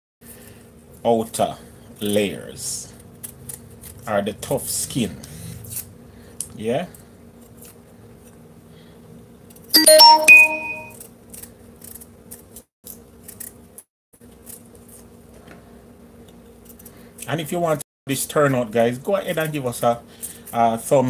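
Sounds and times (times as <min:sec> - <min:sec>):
electronic chime: 0:09.8 - 0:10.9.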